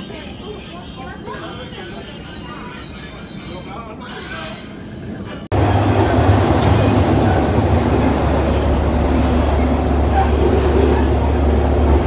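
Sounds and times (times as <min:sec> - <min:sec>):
moving train rumble: 0:00.0 - 0:12.0.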